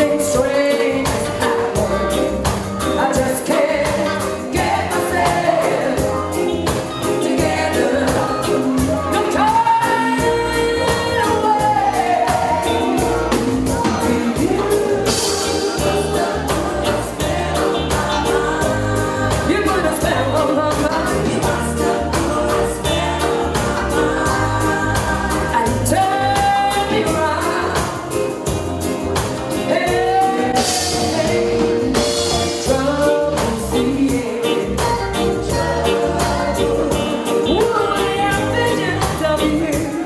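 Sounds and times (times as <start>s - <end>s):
bass guitar: 0.0s - 40.0s
drum kit beat: 0.0s - 40.0s
live band playing: 0.0s - 40.0s
woman singing: 0.0s - 40.0s.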